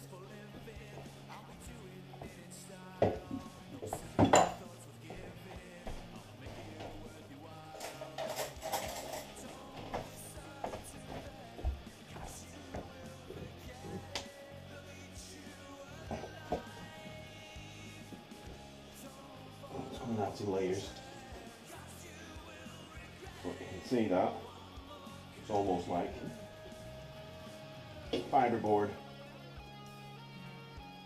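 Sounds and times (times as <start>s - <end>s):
metal pot clanking: 4.2s - 4.6s.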